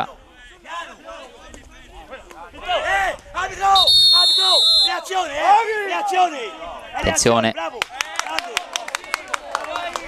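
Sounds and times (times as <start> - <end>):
referee's whistle blast: 3.7 - 5.1.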